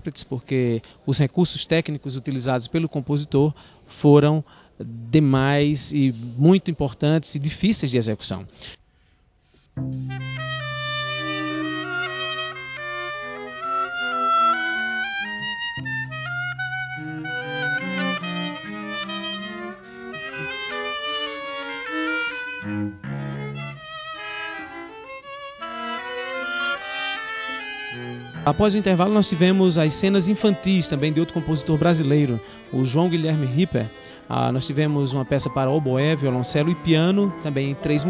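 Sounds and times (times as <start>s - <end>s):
cello low note: 9.8s - 24.9s, 27.5s - 35.0s, 35.6s - 38.0s
oboe: 9.8s - 34.3s
violin: 9.8s - 38.0s.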